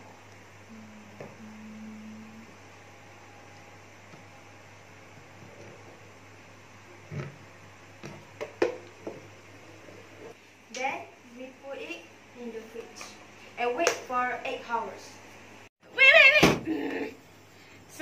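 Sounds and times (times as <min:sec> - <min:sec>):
low steady hum: 0:00.0 - 0:15.7.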